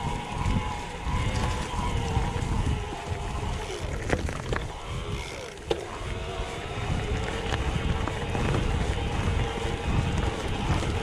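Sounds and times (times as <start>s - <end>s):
bike tyres rumbling on dirt trail: 0.0s - 11.0s
wind buffeting microphone: 0.0s - 11.0s.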